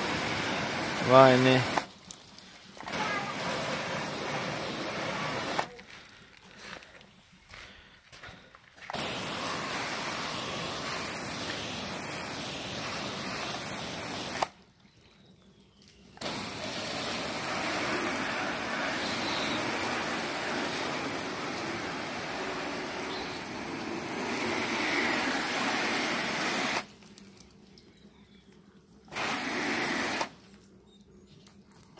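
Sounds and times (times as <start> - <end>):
water spray hissing on car: 0.0 - 5.8, 8.8 - 14.6, 16.2 - 27.5, 29.1 - 30.4.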